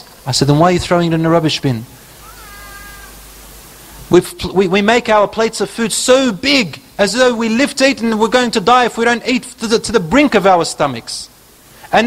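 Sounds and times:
faint high-pitched cry: 2.0s - 3.3s.

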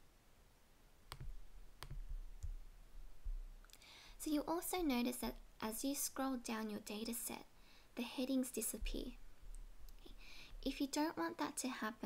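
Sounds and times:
computer mouse clicking: 1.1s - 2.6s.

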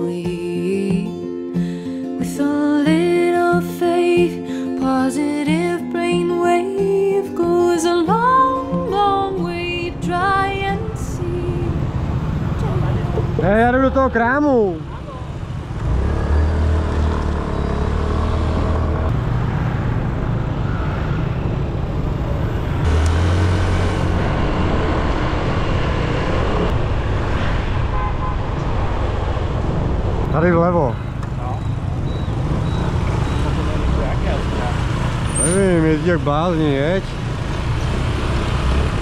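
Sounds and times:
scooter wind and engine rumble: 9.4s - 13.7s, 14.8s - 39.0s.

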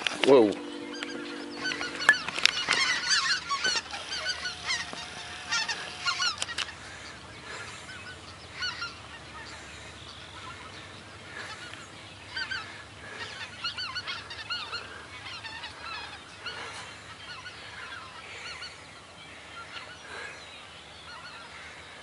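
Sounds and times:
geese honking in flight: 0.0s - 20.4s, 21.0s - 21.9s.

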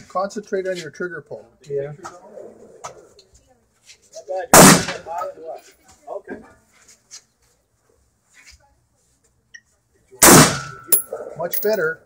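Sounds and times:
rifle shot: 4.5s - 5.0s, 10.2s - 11.0s.

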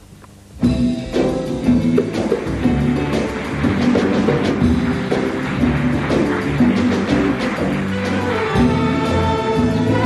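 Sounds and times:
drum strikes: 0.6s - 10.0s
orchestra playing: 0.6s - 10.0s.

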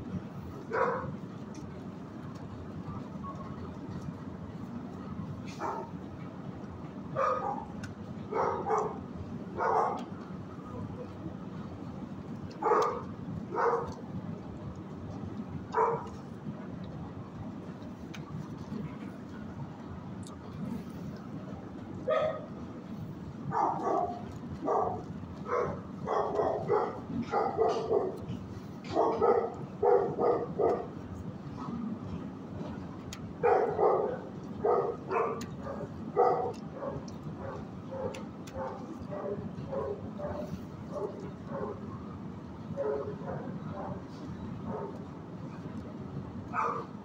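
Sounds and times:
low background hum: 0.0s - 47.0s
dogs barking: 0.6s - 1.2s, 5.5s - 6.0s, 7.2s - 10.2s, 12.5s - 14.0s, 15.7s - 16.2s, 22.0s - 22.5s, 23.5s - 31.0s, 33.4s - 42.0s, 42.7s - 45.1s, 46.5s - 47.0s.

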